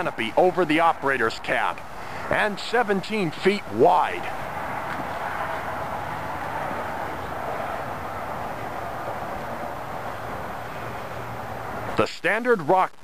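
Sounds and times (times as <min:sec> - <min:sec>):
steady rushing noise: 0:00.0 - 0:13.0.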